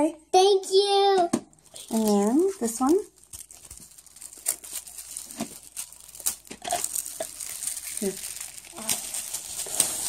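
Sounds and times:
plastic gift wrap crinkling: 1.5 - 10.0.

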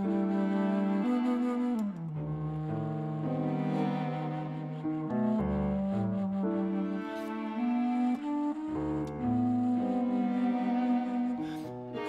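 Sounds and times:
bass flute low notes: 0.0 - 11.6
bowed strings: 0.0 - 12.0.

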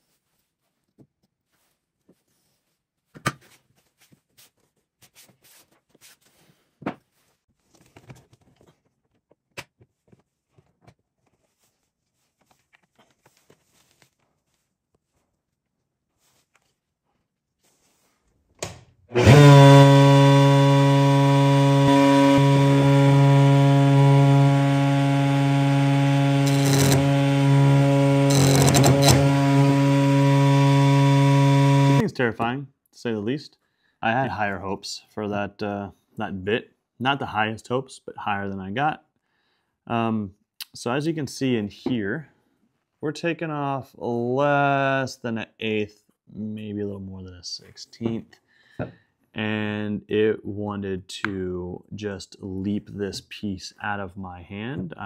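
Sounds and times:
router cutting wood with chatter: 19.1 - 32.0
router running with loud hum: 19.1 - 32.0.

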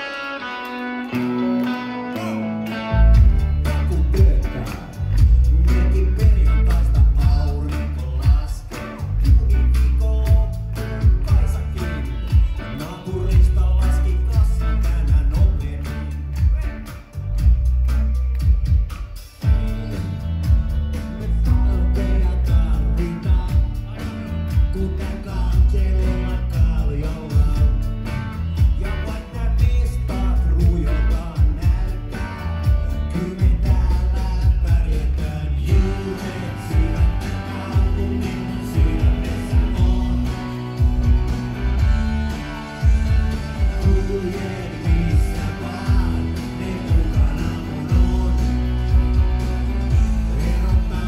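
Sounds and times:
electric guitar: 0.0 - 51.0
live rap-rock band: 0.0 - 51.0
vocals at microphone: 0.8 - 51.0
heavy bass and kick drum: 3.0 - 51.0
person rapping: 3.2 - 17.0, 21.2 - 41.2, 42.3 - 51.0.

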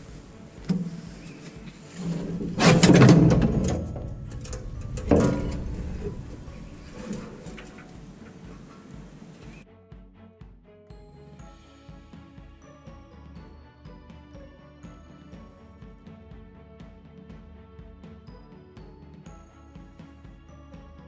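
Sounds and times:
metal tank clunking and scraping: 0.0 - 9.6
background music: 0.0 - 21.0.

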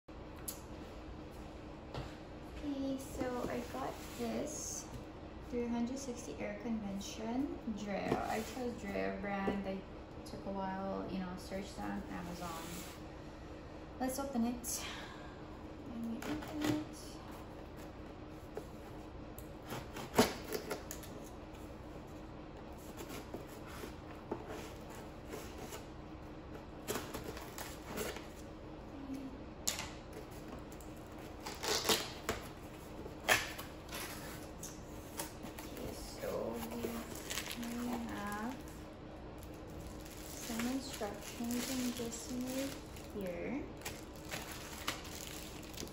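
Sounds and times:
scissors cutting packing tape: 31.4 - 32.5.

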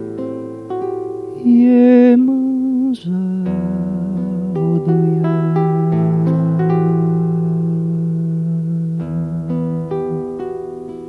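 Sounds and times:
classical guitar: 0.0 - 11.0
man singing with vibrato: 1.2 - 11.0.

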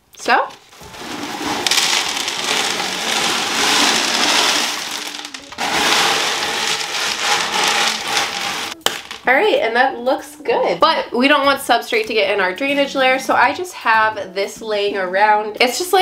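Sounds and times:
clay pebbles clattering on acrylic: 0.5 - 9.3.

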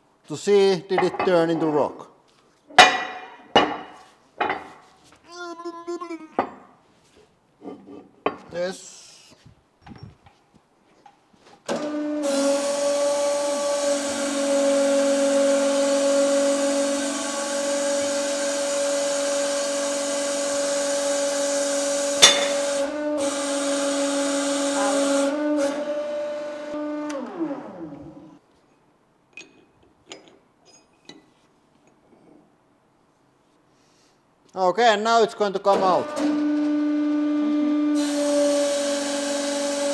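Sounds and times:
hydraulic pump motor humming: 11.7 - 28.2, 36.0 - 39.9.

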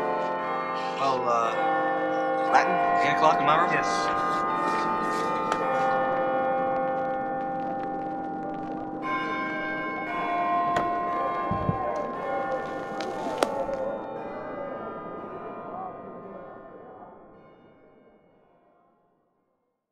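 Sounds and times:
church bells ringing: 0.0 - 18.5.

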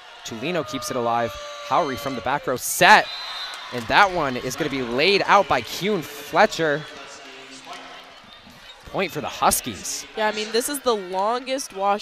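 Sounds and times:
distant voices in large hall: 0.0 - 12.0
commentator speaking: 3.8 - 7.9, 8.9 - 12.0.

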